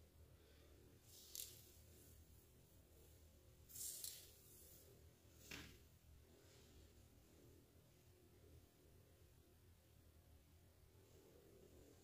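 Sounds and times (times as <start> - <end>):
hair swishing: 3.7 - 4.9.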